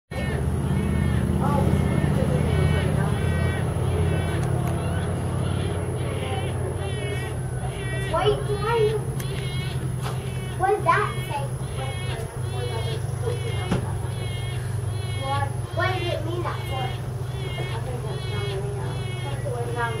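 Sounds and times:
bird nasal begging calls: 0.1s - 20.0s
low engine hum: 0.1s - 20.0s.

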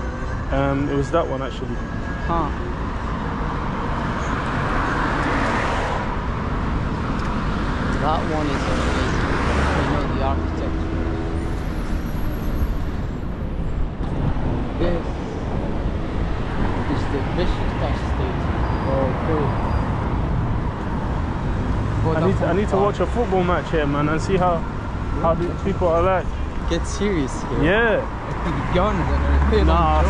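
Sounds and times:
cars driving past: 0.0s - 30.0s.

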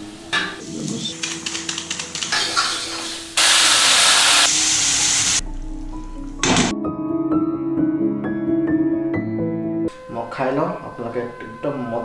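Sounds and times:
water hissing in hot oil: 2.3s - 5.4s.

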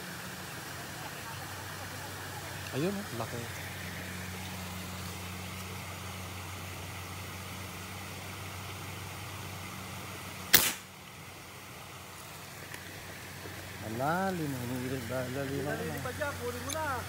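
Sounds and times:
spear gun snap: 10.5s - 10.9s.

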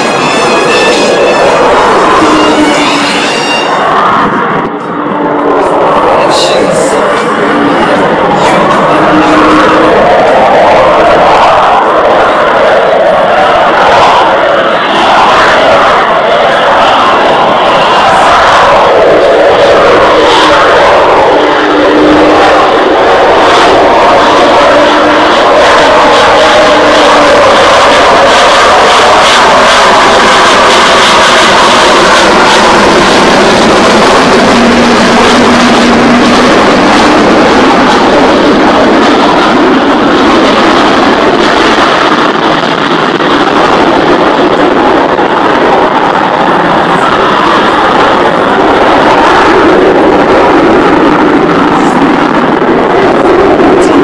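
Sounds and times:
jet engine passing overhead: 0.0s - 54.0s.

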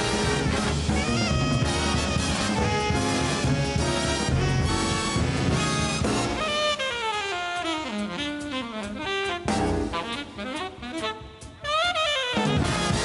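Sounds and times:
alto saxophone solo: 0.0s - 13.0s
swing big band playing: 0.0s - 13.0s.

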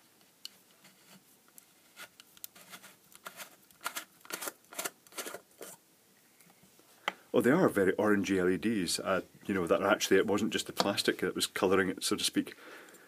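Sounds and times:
plastic lens cover unscrewing: 2.0s - 5.8s.

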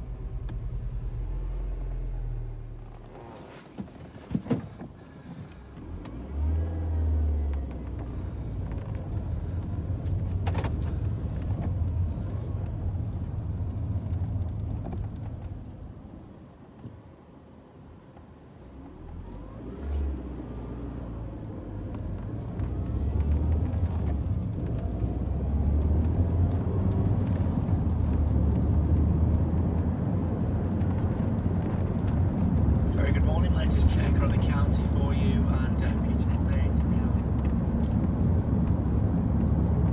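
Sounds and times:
car engine: 0.0s - 39.9s
road noise: 0.0s - 39.9s.

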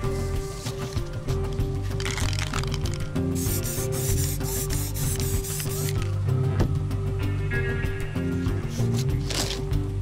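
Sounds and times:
background music: 0.0s - 10.0s
spray can hissing: 2.0s - 6.1s.

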